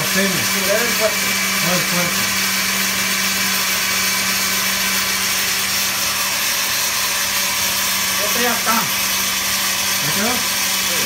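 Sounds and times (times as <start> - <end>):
blender whirring: 0.0 - 11.0.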